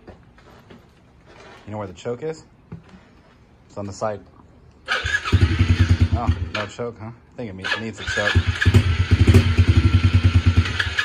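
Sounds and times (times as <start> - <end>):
dirt bike engine puttering: 4.9 - 6.8, 7.6 - 11.0.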